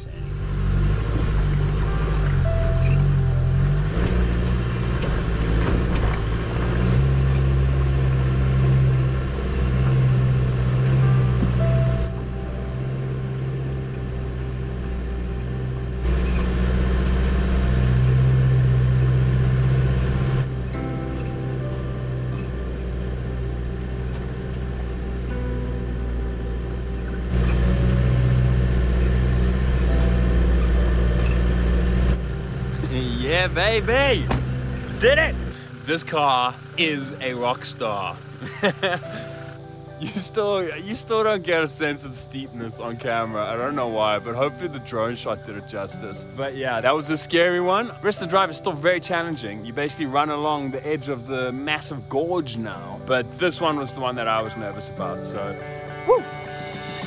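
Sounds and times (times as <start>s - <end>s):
engine running under load: 0.0s - 52.4s.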